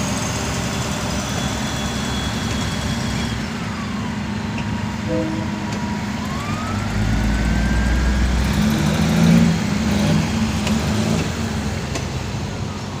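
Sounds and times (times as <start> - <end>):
traffic noise: 0.0 - 13.0
deeper engine note: 5.0 - 8.6.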